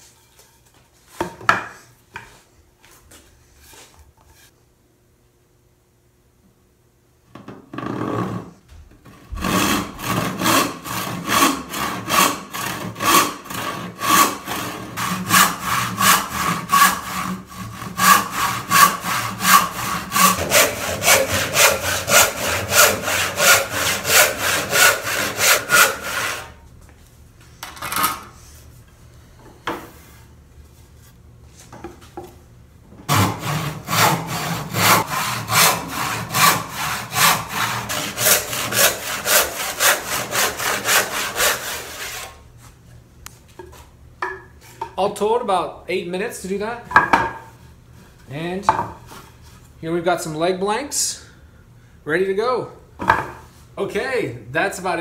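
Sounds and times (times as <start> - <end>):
hand saw ripping wood: 9.2 - 26.6, 33.1 - 42.4.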